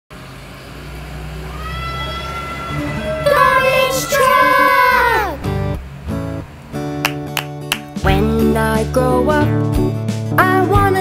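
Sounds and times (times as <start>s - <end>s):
truck rolling over cobblestones: 0.1s - 8.9s
diesel truck engine rumbling: 0.1s - 11.0s.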